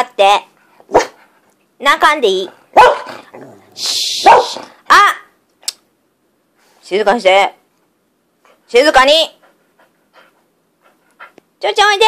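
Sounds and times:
brief hiss: 3.8s - 4.4s.

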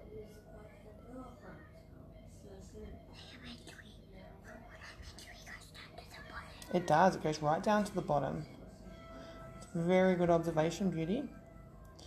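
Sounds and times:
faint whispered speech: 0.0s - 7.0s
low room noise: 0.0s - 12.0s.

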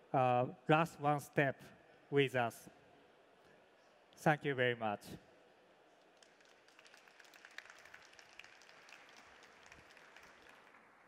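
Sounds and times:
audience applause: 6.1s - 11.0s.

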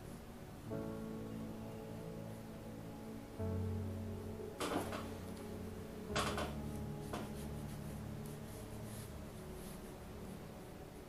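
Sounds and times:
soft background music: 0.0s - 11.0s
brush rustling on paper: 6.5s - 11.0s.

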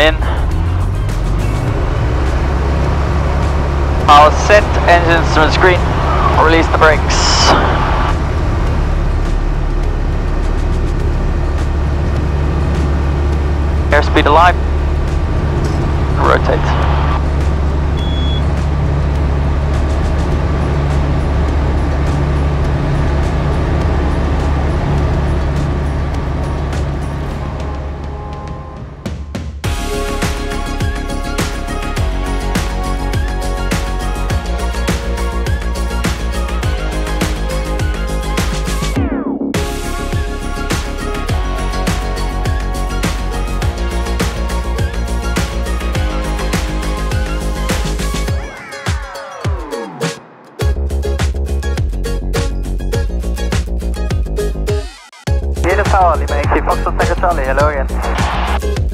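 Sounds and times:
light aircraft engine and propeller: 0.0s - 28.5s
music: 0.0s - 58.9s.

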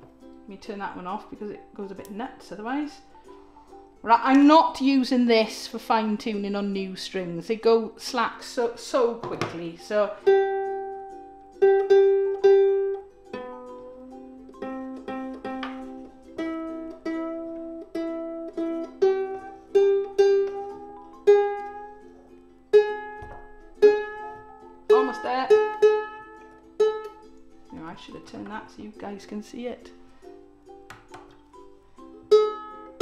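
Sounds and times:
ukulele strings plucked: 0.0s - 6.7s, 8.2s - 33.0s.

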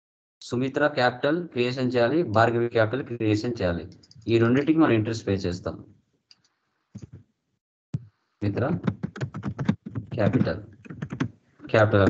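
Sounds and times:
man speaking: 0.4s - 5.8s, 8.4s - 8.8s, 10.2s - 10.7s, 11.6s - 12.0s.

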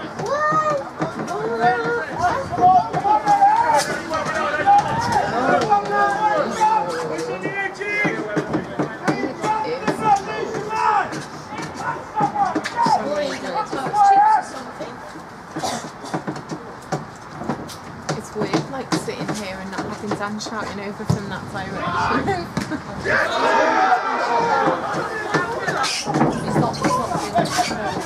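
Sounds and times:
people talking: 11.5s - 15.8s, 18.1s - 28.0s.

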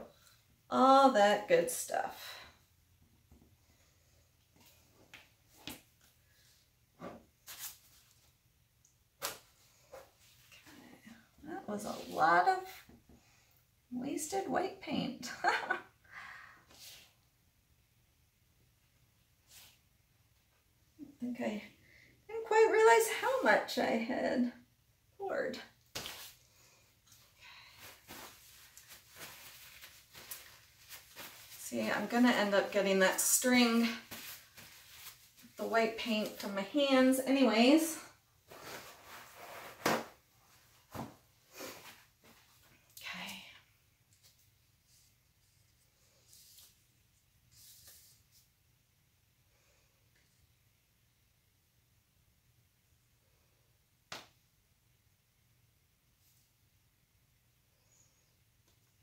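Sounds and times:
quiet room hum: 0.0s - 59.0s
faint soft rustles and clicks: 2.4s - 13.6s, 25.8s - 37.4s, 38.4s - 48.6s.

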